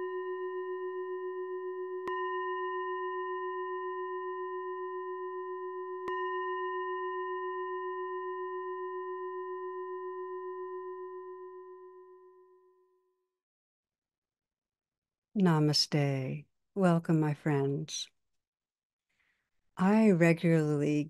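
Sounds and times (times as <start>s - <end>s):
meditation bell ringing: 0.0s - 13.0s.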